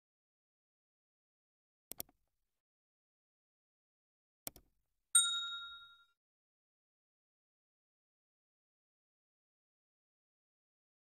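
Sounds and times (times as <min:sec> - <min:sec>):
bell ding: 0:05.2 - 0:06.2.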